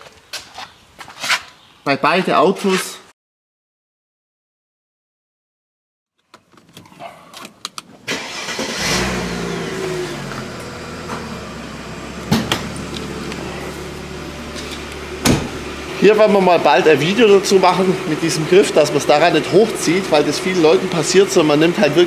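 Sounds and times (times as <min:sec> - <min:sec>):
car engine starting and idling: 0:07.8 - 0:22.0
sharp knock: 0:15.2 - 0:15.6.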